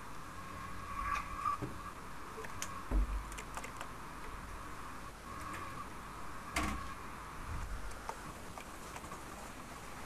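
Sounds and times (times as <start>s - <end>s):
faint steady hum: 0.0s - 10.0s
keyboard keys clicking: 3.3s - 3.9s.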